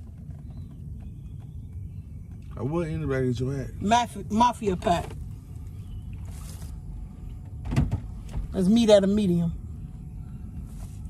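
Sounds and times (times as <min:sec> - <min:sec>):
low rumble inside car cabin: 0:00.0 - 0:11.0.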